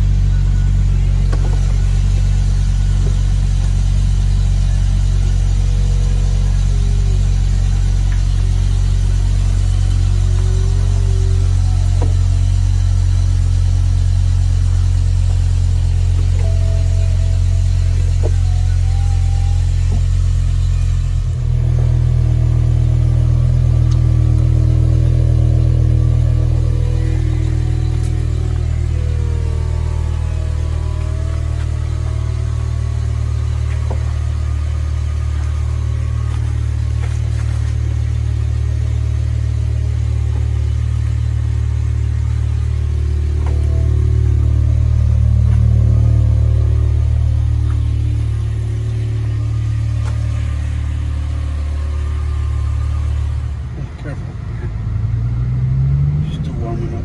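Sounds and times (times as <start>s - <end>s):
car engine idling: 0.0s - 57.0s.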